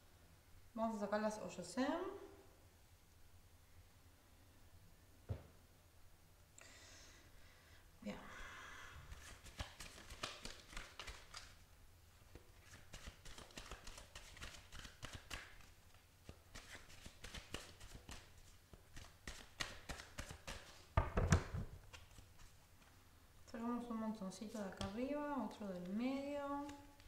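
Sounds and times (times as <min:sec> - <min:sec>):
cards being shuffled: 0:09.1 - 0:11.6, 0:12.3 - 0:22.9, 0:25.8 - 0:27.0.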